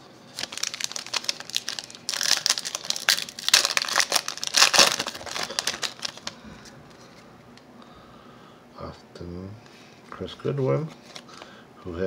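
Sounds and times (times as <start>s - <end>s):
foil wrapper crinkling: 0.3s - 6.4s.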